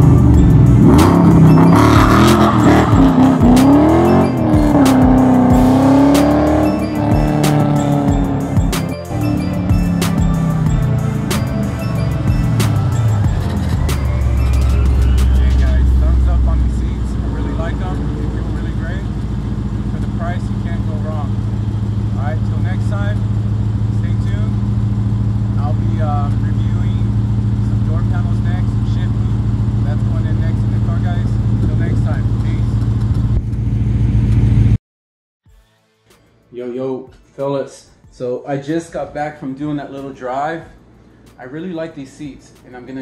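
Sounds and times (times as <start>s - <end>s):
car engine slowing and idling: 0.0s - 34.8s.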